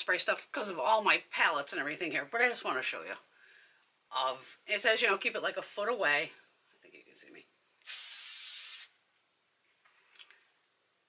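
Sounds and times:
spray bottle hiss: 7.8 - 9.0.

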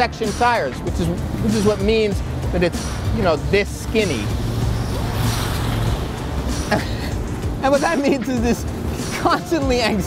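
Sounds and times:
road noise: 0.0 - 10.0
vehicle engine rumble: 0.0 - 10.0.

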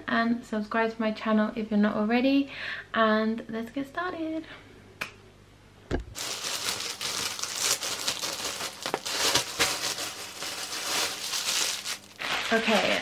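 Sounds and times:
plastic packaging crinkling: 6.2 - 13.0.

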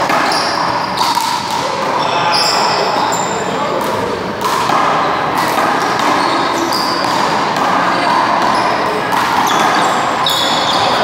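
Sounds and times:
sneakers squeaking on court floor: 0.0 - 3.8, 4.4 - 11.0
handball slapping off wall: 3.8 - 11.0.

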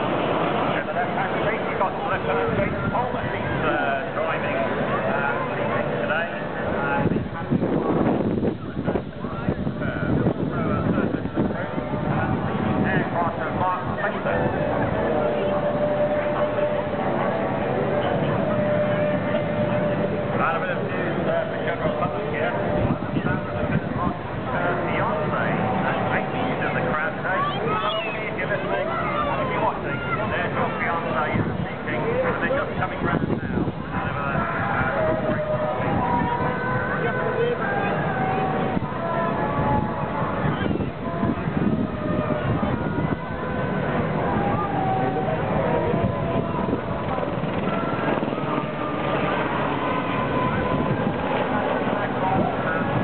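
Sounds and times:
people talking at once: 0.0 - 39.0
helicopter drone: 0.0 - 53.0
helicopter rotor and turbines: 40.9 - 53.0.

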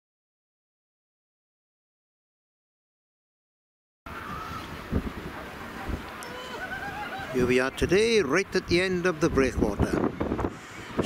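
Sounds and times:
wind buffeting microphone: 4.1 - 11.0.

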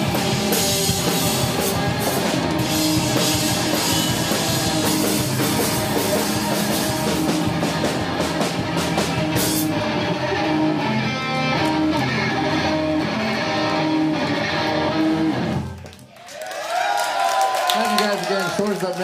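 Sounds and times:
drums and cymbals: 0.0 - 10.0
electric guitar: 0.0 - 16.0.

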